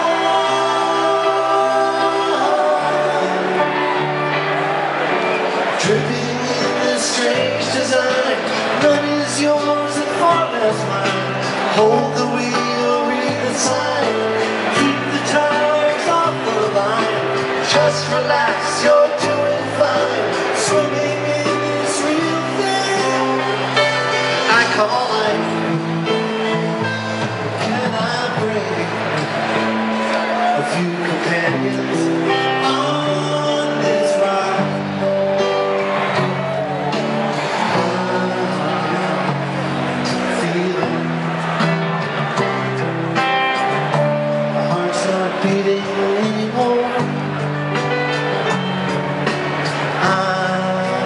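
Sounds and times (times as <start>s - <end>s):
person singing: 0.0s - 4.6s, 5.2s - 42.6s, 43.6s - 51.0s
rock band playing live: 0.0s - 51.0s.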